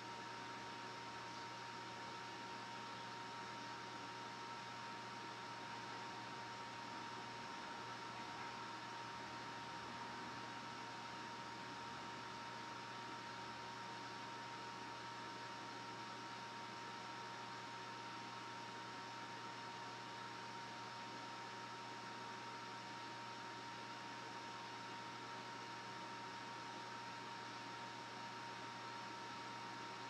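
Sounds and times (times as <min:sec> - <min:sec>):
electrical hum: 0:00.0 - 0:30.0.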